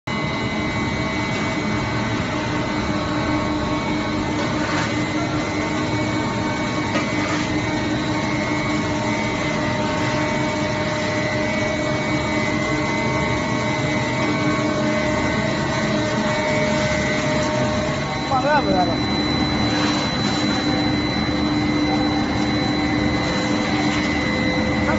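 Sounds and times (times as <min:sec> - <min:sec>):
recycling machinery running: 0:00.1 - 0:24.9.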